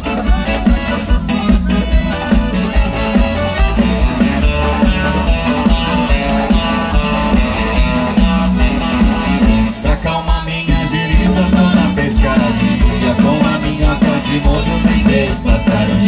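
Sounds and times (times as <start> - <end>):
live country band playing: 0.0 - 16.0.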